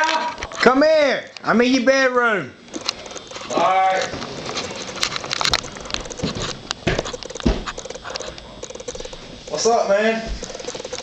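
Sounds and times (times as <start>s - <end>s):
camera handling thumps: 5.3s - 7.8s.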